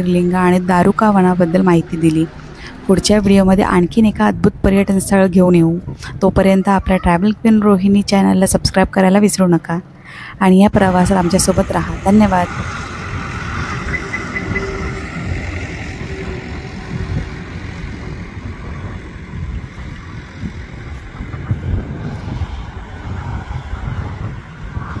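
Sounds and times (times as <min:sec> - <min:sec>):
vehicle road and wind noise: 0:00.0 - 0:25.0.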